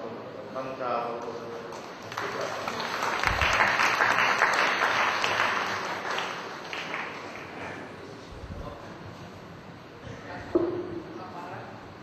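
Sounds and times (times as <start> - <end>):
audience applauding: 1.7 - 7.8.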